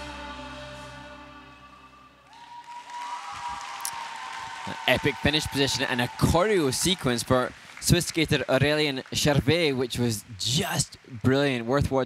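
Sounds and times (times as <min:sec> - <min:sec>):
music: 0:00.0 - 0:02.4
audience applauding: 0:02.2 - 0:11.8.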